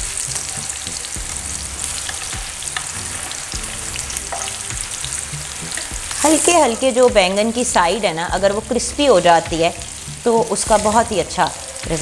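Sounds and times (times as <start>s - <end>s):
eggplant sizzling in oil: 0.0s - 12.0s.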